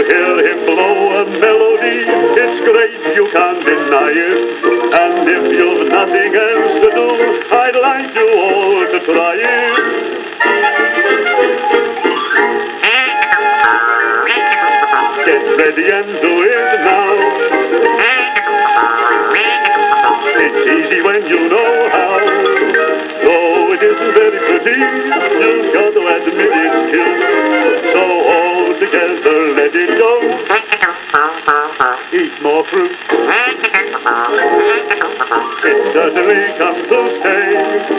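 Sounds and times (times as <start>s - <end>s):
old record instrumental music: 0.0s - 37.9s.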